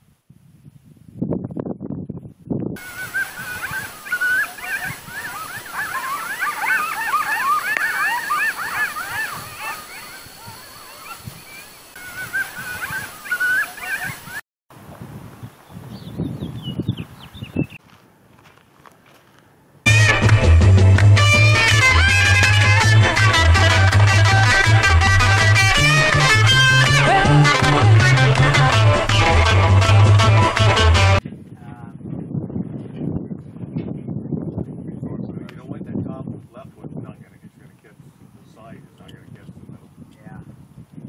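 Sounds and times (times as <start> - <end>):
animal cries whines and yelps: 2.8 - 14.4.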